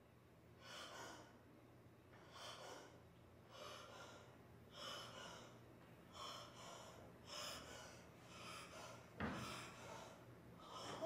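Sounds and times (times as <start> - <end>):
man breathing hard: 0.6 - 1.5, 2.2 - 11.0.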